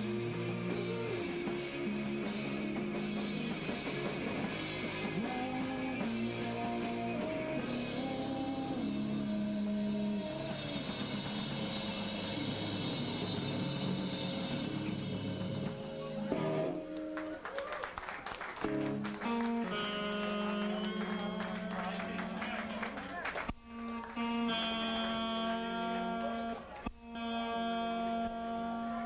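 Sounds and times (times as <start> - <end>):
drum kit: 0.0 - 17.2, 18.6 - 29.0
distorted electric guitars: 0.0 - 17.4, 18.6 - 29.0.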